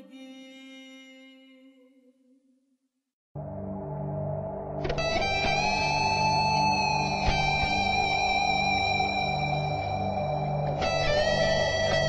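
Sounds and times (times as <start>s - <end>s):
strummed guitar chords: 3.4s - 12.0s.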